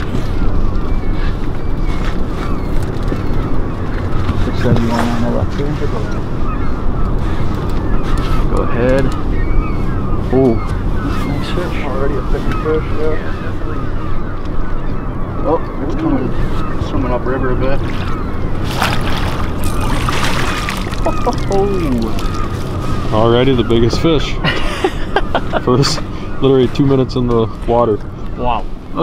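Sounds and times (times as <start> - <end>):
outboard motor rumbling: 0.0 - 29.0
water splashing: 17.8 - 23.2.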